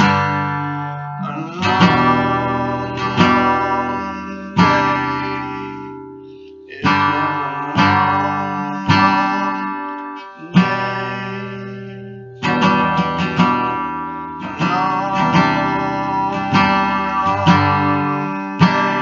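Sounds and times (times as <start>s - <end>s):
acoustic guitar chords: 0.0s - 19.0s.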